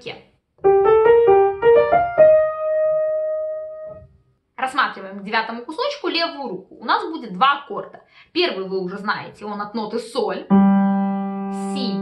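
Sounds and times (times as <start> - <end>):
piano melody: 0.6 - 4.2, 10.5 - 12.0.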